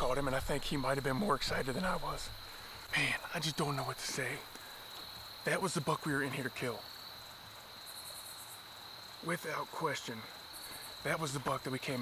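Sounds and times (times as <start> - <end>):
fast pulsing insect trill: 0.0 - 12.0
insects droning: 0.0 - 12.0.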